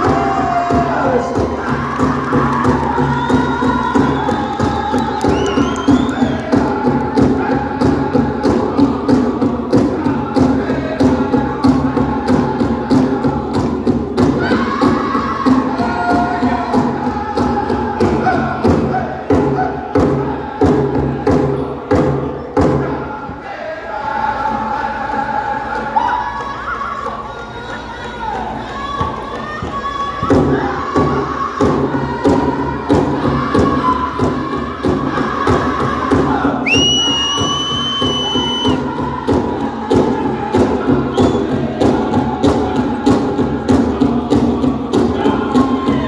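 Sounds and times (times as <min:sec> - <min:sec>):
group of singers chanting: 0:00.0 - 0:27.4, 0:28.0 - 0:46.0.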